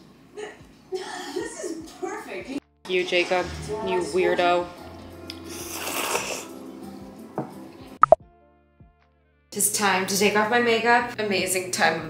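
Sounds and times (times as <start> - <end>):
soft background music: 0.0 - 12.0
noodle slurp: 5.4 - 6.5.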